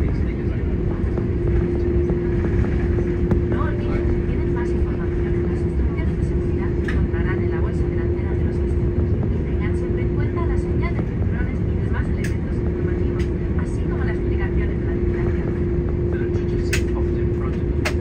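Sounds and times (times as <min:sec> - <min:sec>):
airplane cabin rumble: 0:00.0 - 0:18.0
constant hum: 0:00.0 - 0:18.0
people talking: 0:00.0 - 0:18.0.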